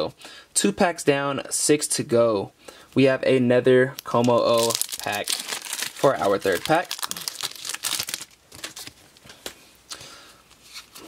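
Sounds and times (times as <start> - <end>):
foil wrapper crinkling and tearing: 4.1 - 9.4.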